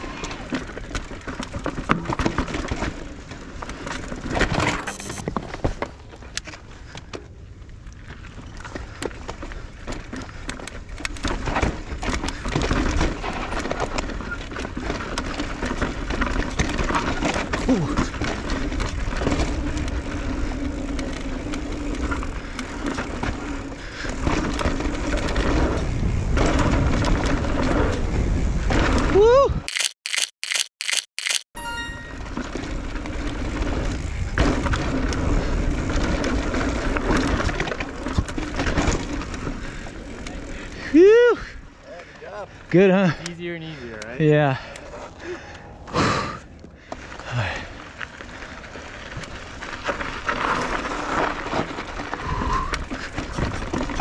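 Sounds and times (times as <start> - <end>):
bike rattling: 0.0 - 54.0.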